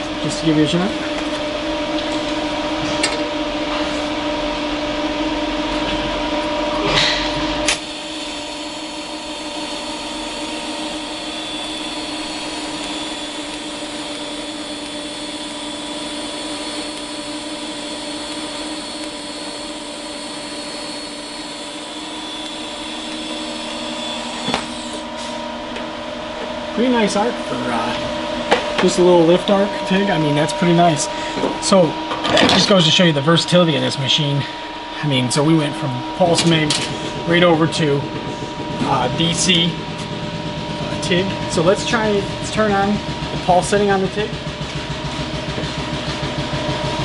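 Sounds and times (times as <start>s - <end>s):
welding arc humming: 0.0s - 47.0s.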